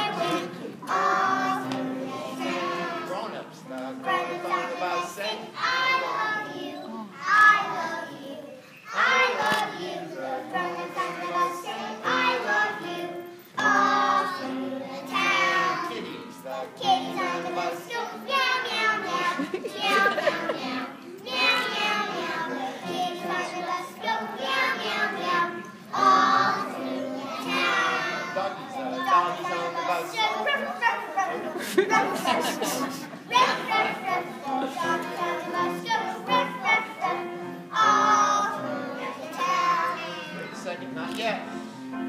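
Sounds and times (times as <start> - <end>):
children singing in unison: 0.0 - 40.7.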